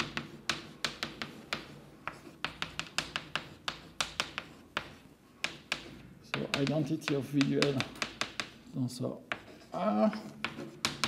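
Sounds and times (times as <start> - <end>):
chalk tapping on blackboard: 0.0 - 11.0.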